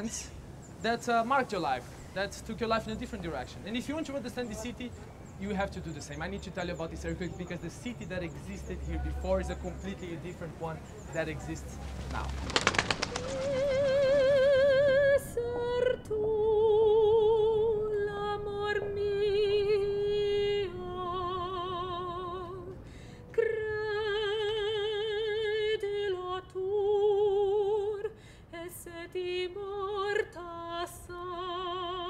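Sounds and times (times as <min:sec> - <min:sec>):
rapid clicks: 0:12.0 - 0:13.6.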